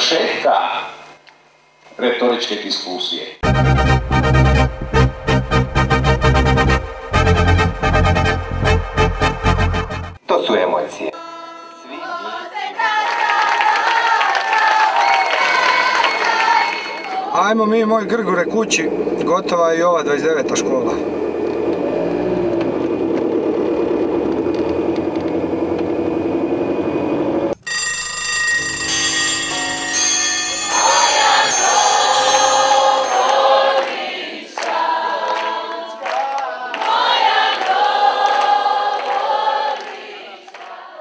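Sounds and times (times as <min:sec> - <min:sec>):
choir singing with music: 0:03.4 - 0:17.8, 0:29.4 - 0:41.0
wavering drone: 0:28.4 - 0:34.0.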